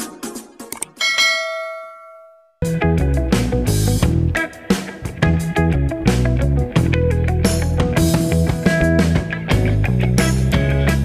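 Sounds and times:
background music: 0.0s - 1.5s, 2.6s - 11.0s
bell chime: 1.0s - 2.6s.

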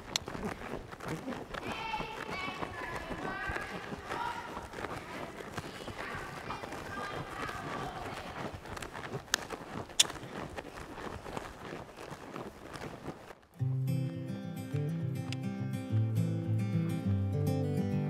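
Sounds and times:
horse hoofbeats on sand: 0.0s - 13.8s
faint voices: 0.3s - 8.7s.

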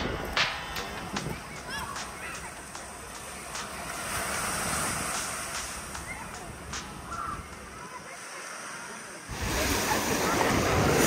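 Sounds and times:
surf washing onto beach: 0.0s - 11.0s.

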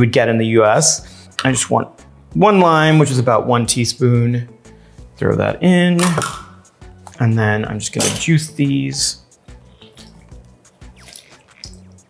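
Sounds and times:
background music: 0.0s - 12.0s
juice dripping into glass cup: 11.0s - 12.0s.

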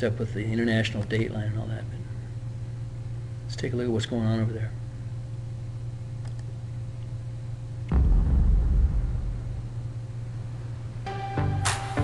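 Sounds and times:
low electrical hum: 0.0s - 12.0s
loud low rumble: 7.9s - 10.9s.

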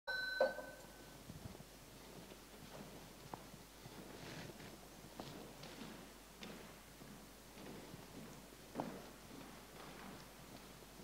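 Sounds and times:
ringing tone: 0.1s - 1.2s.

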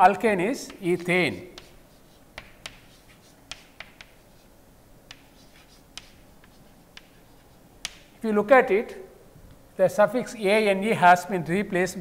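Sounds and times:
chalk tapping on chalkboard: 1.5s - 8.2s.

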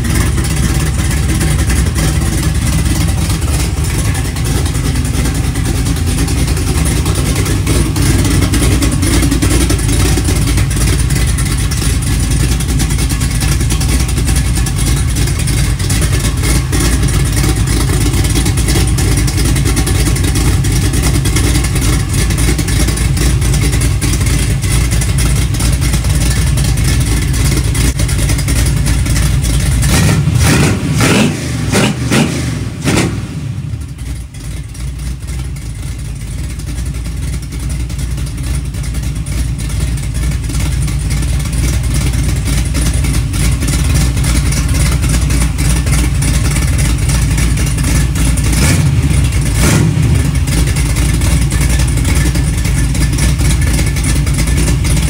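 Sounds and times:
car engine running and revving: 0.0s - 55.0s.

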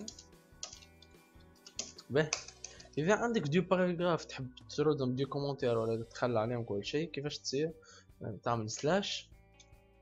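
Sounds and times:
computer keyboard key clicks: 0.0s - 1.0s, 1.6s - 2.8s
man's voice: 2.1s - 9.2s.

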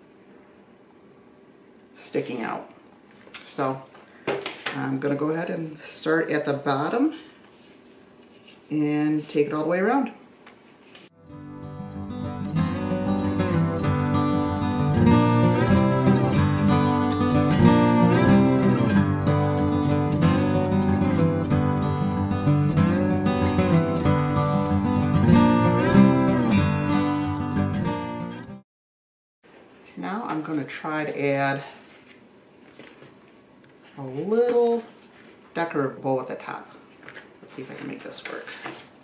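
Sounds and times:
guitar-led background music: 11.2s - 28.6s.

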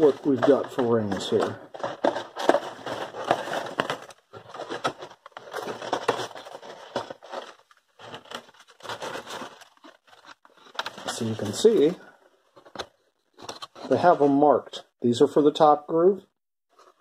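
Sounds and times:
cardboard box rustling and scraping: 0.0s - 12.0s.

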